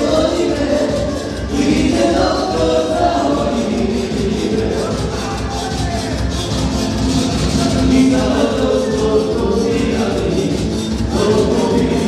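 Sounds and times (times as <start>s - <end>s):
person singing: 0.0s - 6.5s, 7.4s - 12.0s
live dance band playing: 0.0s - 12.0s.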